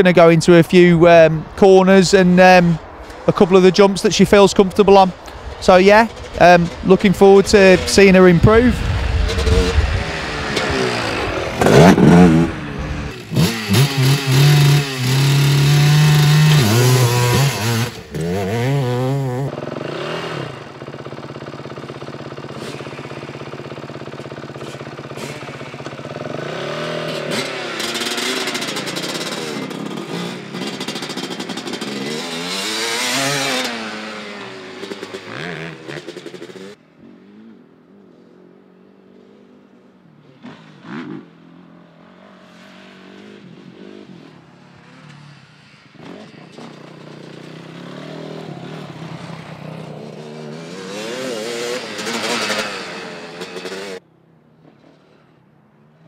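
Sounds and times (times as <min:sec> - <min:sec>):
quad engine revving: 0:06.2 - 0:36.7, 0:47.5 - 0:54.0.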